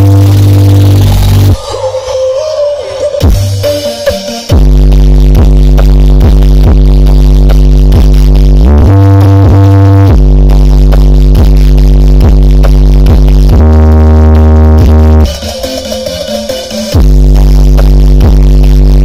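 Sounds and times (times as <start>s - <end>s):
bass-heavy electronic music: 0.0s - 19.0s.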